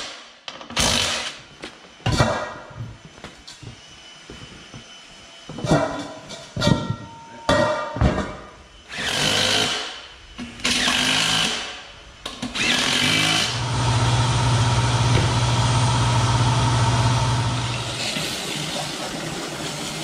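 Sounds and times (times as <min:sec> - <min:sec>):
motor humming: 0:12.4 - 0:18.2.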